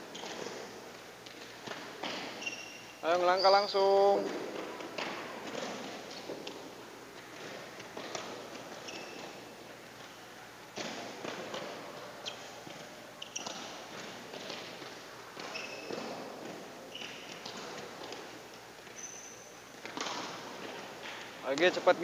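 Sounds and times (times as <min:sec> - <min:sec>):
sports shoes squeaking: 0:00.0 - 0:22.0.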